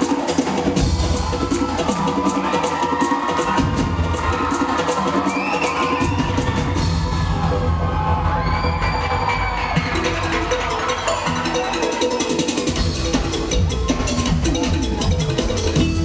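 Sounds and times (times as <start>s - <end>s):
live band playing instrumental: 0.0s - 8.1s, 9.3s - 16.0s
audience cheering and screaming: 0.0s - 15.8s
drum beat: 0.0s - 16.0s.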